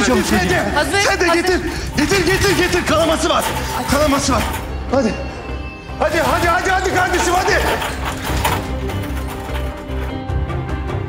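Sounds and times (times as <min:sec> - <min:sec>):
tense dramatic music: 0:00.0 - 0:11.0.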